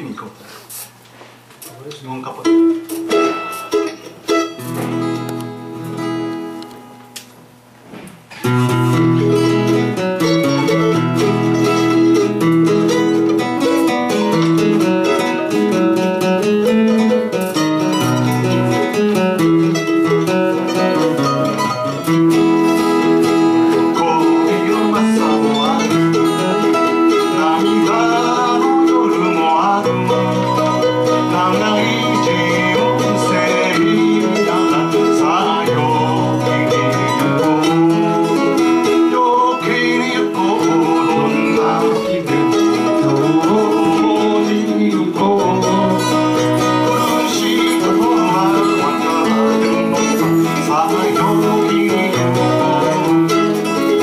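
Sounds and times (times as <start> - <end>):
mandolin: 2.3 - 7.4, 8.3 - 54.0
acoustic guitar strummed: 2.3 - 54.0
men singing: 23.0 - 54.0.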